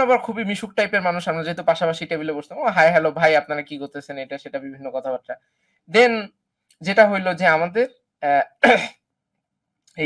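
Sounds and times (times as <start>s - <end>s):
man clearing throat: 8.6s - 9.0s.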